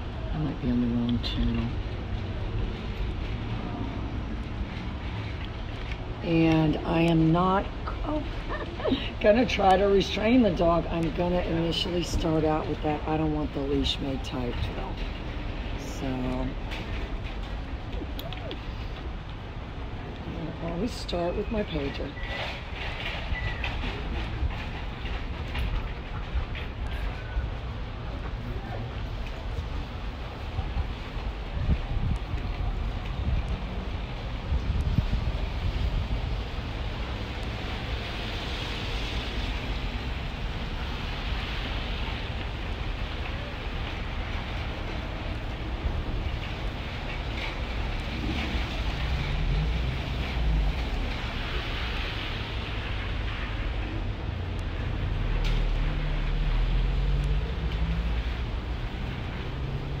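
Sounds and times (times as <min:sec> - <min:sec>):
wind rumbling on microphone: 0:00.0 - 1:00.0
passing traffic hiss: 0:26.5 - 1:00.0.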